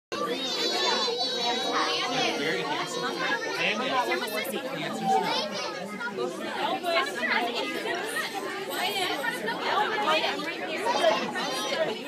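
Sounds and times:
children talking and calling out: 0.1 - 12.0
high-pitched child's voice: 0.2 - 4.2.

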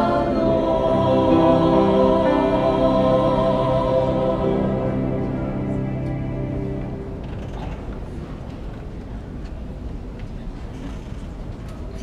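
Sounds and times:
choir shuffling and seats creaking: 0.0 - 8.8.

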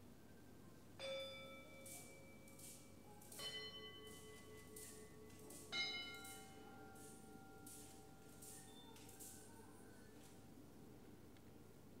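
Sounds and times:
faint altar bells ringing: 1.0 - 10.0.

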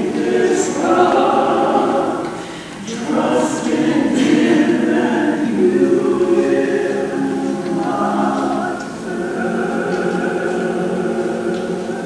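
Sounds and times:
church choir singing held chords: 0.0 - 12.0.

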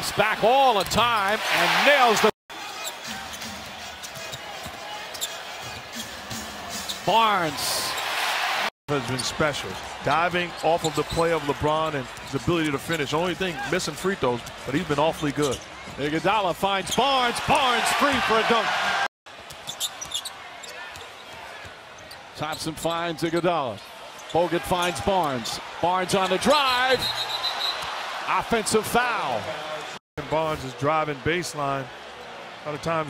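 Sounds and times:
crowd noise: 0.0 - 22.4
shoe squeaks on hardwood: 19.5 - 21.2.

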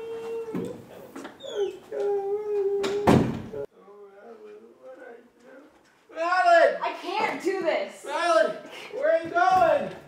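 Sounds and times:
door slamming: 2.8 - 3.6.

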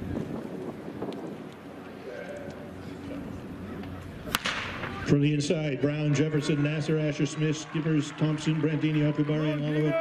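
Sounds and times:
wind buffeting microphone: 0.0 - 1.9
murmur of spectators: 1.8 - 10.0.

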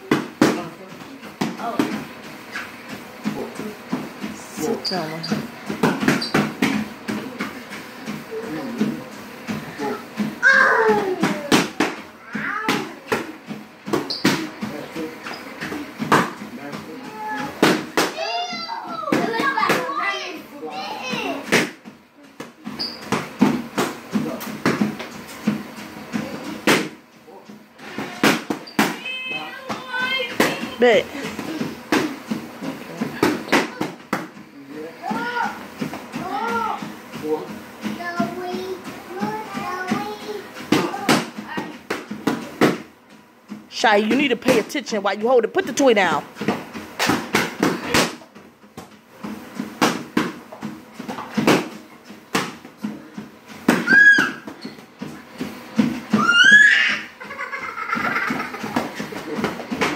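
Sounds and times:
boxing gloves slapping mitts: 0.0 - 4.3, 5.3 - 20.0, 21.0 - 27.0, 27.8 - 34.4, 35.0 - 42.9, 46.3 - 59.9.

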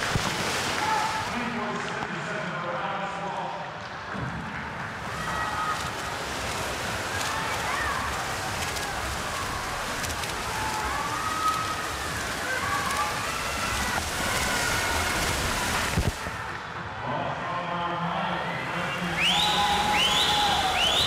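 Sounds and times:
spectators cheering: 0.0 - 1.7, 4.5 - 21.0
swimmers splashing: 0.0 - 3.2, 3.8 - 16.8, 18.2 - 21.0.

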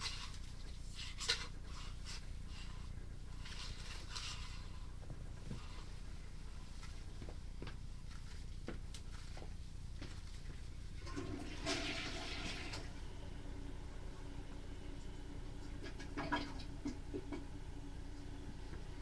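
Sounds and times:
steady low hum: 0.0 - 11.5, 12.2 - 19.0
water rushing through drain pipes: 11.0 - 13.3, 15.0 - 18.9.

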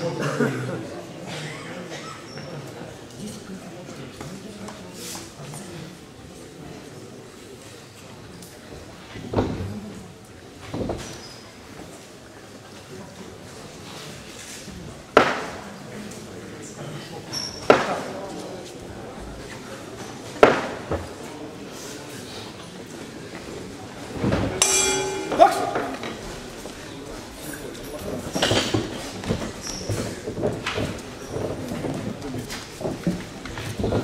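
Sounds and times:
crowd voices: 0.0 - 10.7, 11.4 - 34.0
boxing ring bell: 24.6 - 26.2
sharp knocks echoing: 24.6 - 26.7.

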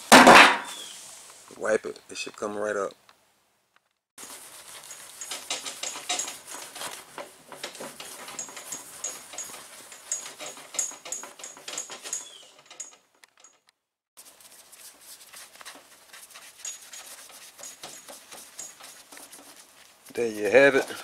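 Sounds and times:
towel rubbing with squeaks: 14.2 - 21.0.

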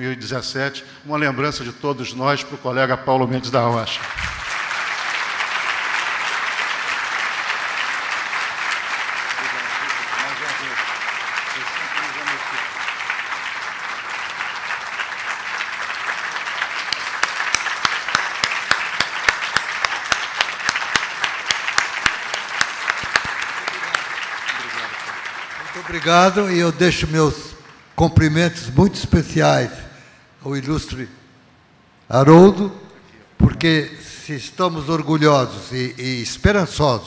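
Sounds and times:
audience applause: 3.9 - 27.9
sharp single claps: 16.8 - 24.9.

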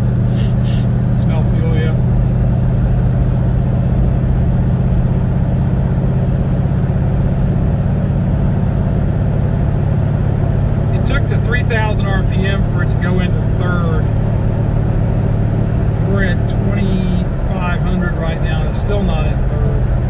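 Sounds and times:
car engine running steadily: 0.0 - 20.0
road noise: 0.0 - 20.0.

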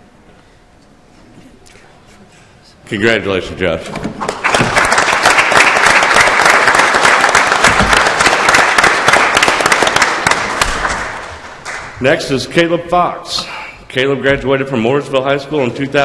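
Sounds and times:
crowd applauding: 4.2 - 12.0.

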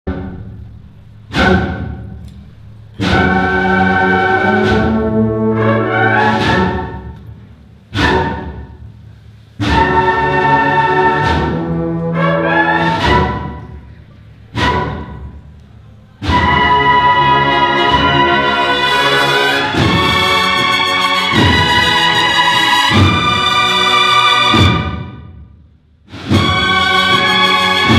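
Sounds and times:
cornet and drum band march: 3.0 - 7.2, 9.6 - 13.8, 14.5 - 15.5, 16.2 - 25.2, 26.1 - 27.9.

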